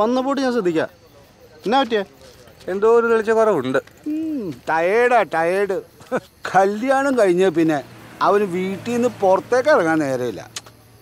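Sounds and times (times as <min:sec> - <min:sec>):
man speaking: 0:00.0 - 0:10.6.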